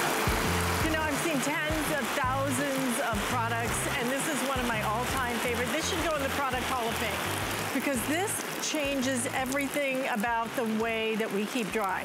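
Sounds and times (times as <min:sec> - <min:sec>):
background music with bass pulse: 0:00.0 - 0:01.2, 0:01.8 - 0:02.6, 0:03.2 - 0:04.0, 0:04.7 - 0:08.3
water spray on umbrella: 0:00.0 - 0:12.0.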